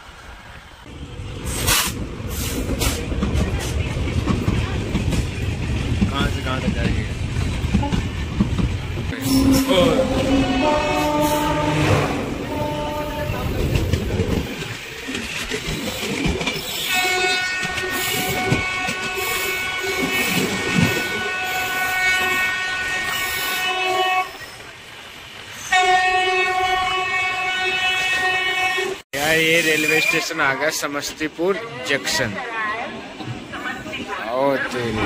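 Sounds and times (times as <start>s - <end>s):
moving train wheel clatter: 1.2s - 23.6s
train horn blasts: 9.1s - 13.6s, 16.9s - 24.5s, 25.7s - 29.0s.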